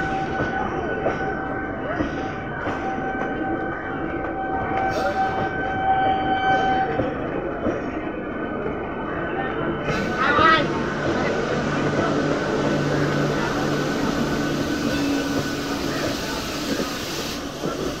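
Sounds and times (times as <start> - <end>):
train rumbling past on track: 0.0 - 18.0.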